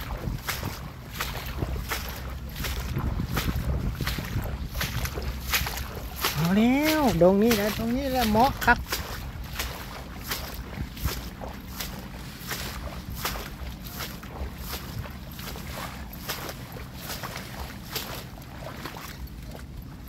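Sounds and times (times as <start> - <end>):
wind rumble on microphone: 0.0 - 20.0.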